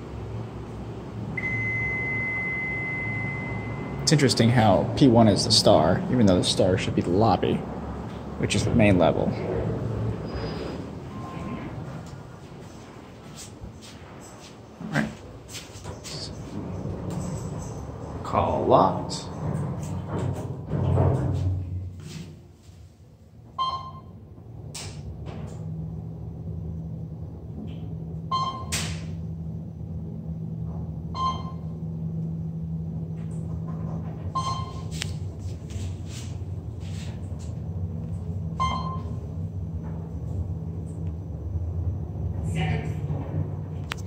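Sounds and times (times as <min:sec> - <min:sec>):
elevator hum: 0:00.0 - 0:44.0
short beeps: 0:01.4 - 0:04.1, 0:28.3 - 0:28.8, 0:31.2 - 0:31.7, 0:34.4 - 0:34.9, 0:38.6 - 0:39.2.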